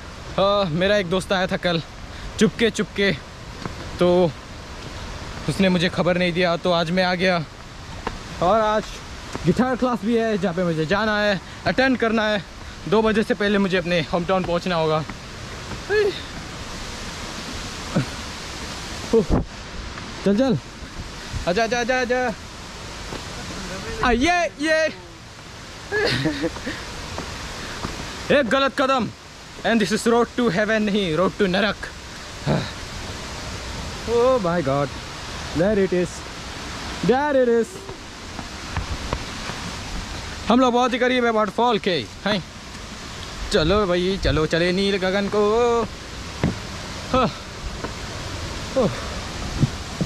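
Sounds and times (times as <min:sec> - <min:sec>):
waterfall rushing: 0:00.0 - 0:50.0.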